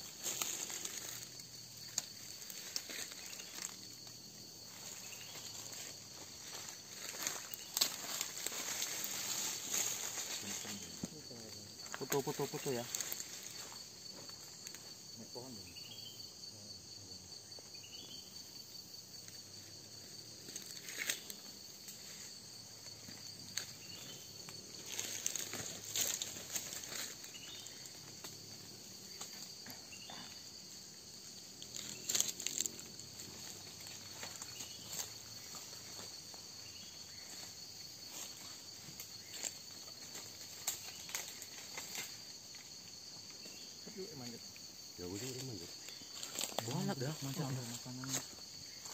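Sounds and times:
dry leaves and twigs rustling: 0.0s - 15.2s, 19.2s - 48.9s
insect chorus drone: 0.0s - 48.9s.

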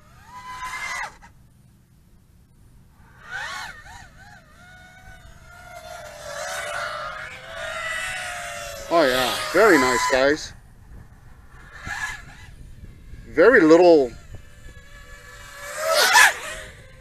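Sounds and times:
drone motors whining: 0.0s - 1.6s, 2.6s - 17.0s.

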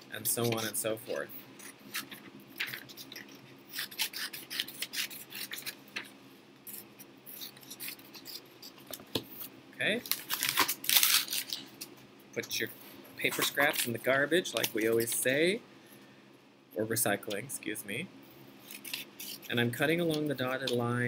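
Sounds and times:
scissors snipping paper: 1.9s - 5.8s
paper rustling: 1.9s - 6.1s.

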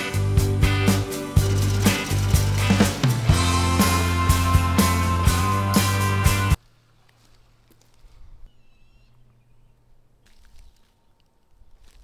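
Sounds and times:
music with steady beat: 0.0s - 6.6s
faint high chirp: 8.4s - 9.8s.

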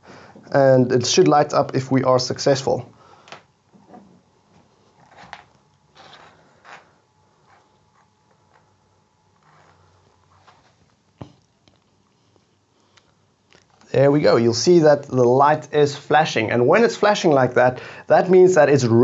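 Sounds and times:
soft rustles and taps of wires: 9.4s - 13.9s.

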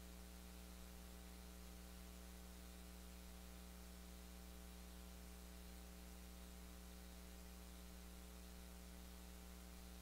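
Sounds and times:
electrical mains hum with hiss: 0.0s - 10.0s.

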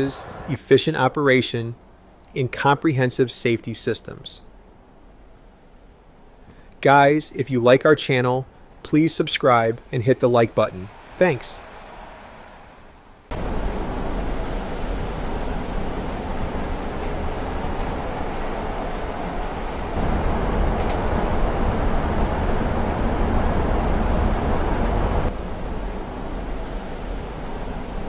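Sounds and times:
bus road and rolling rumble: 0.0s - 0.7s, 9.4s - 28.0s.

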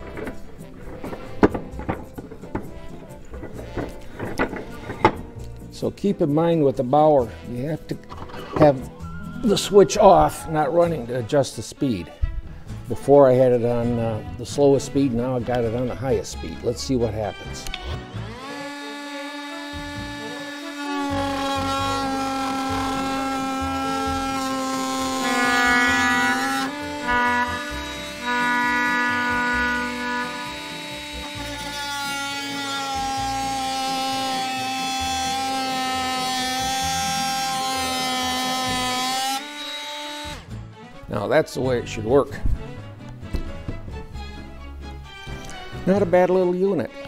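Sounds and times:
oscillating multi-tool cutting wood: 0.0s - 10.7s, 17.0s - 40.6s.

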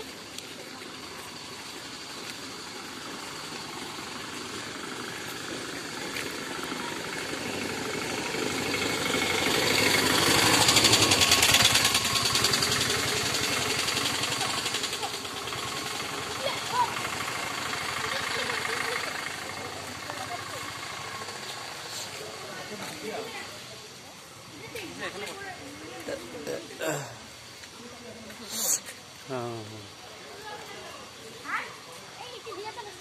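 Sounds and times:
vehicle engine passing by: 1.0s - 26.6s.

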